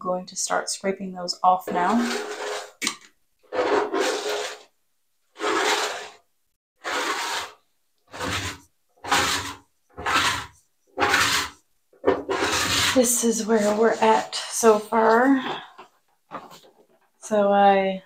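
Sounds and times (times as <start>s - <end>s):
scraper scraping bathtub: 1.4s - 17.4s.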